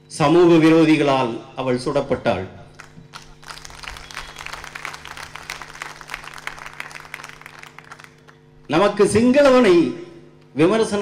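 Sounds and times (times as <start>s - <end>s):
low steady hum: 0.0s - 11.0s
audience applauding: 2.8s - 8.7s.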